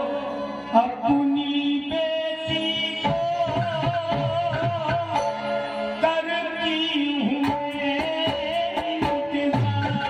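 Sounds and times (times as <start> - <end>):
harmonium notes: 0.0 - 10.0.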